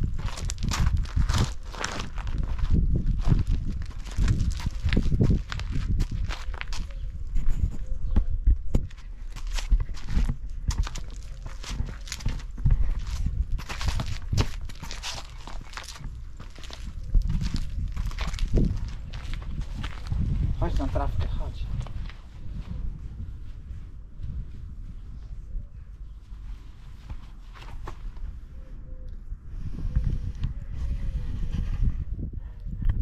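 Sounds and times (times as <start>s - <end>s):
footsteps crunching on gravel: 0.0s - 7.7s, 8.8s - 22.3s
footsteps on paving stones: 0.0s - 22.9s.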